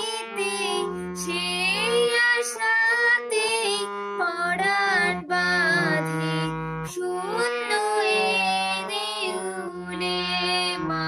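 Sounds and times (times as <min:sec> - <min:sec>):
harmonium melody: 0:00.0 - 0:11.0
woman singing: 0:00.0 - 0:11.0.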